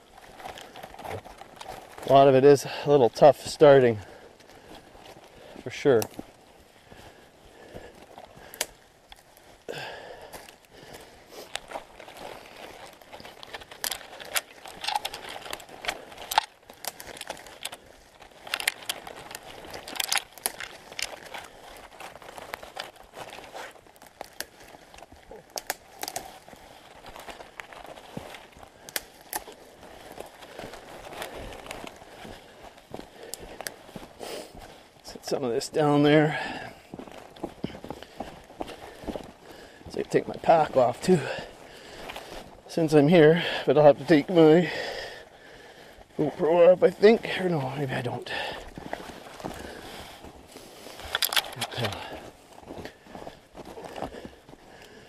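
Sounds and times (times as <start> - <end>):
footsteps in snow: 0.0 - 55.0
rustling through branches: 0.0 - 55.0
twigs cracking: 0.0 - 55.0.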